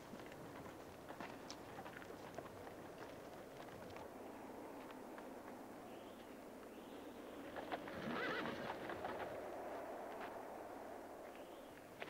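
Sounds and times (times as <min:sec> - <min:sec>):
hoof clops on dirt: 0:00.0 - 0:04.2
horse whinnying: 0:08.0 - 0:08.8.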